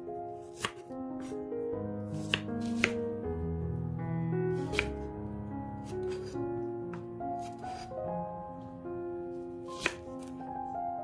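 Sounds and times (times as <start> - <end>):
knife slicing onion: 0.4 - 1.3, 2.1 - 3.0, 4.6 - 5.1, 5.8 - 6.4, 7.4 - 7.9, 9.7 - 10.4.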